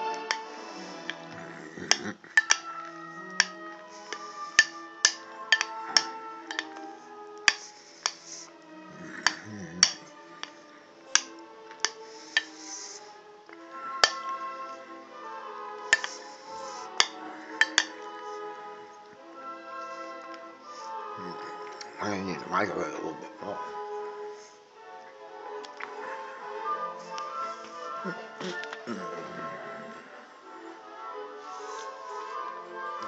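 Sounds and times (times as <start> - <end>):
music with long held notes: 0.0 - 33.0.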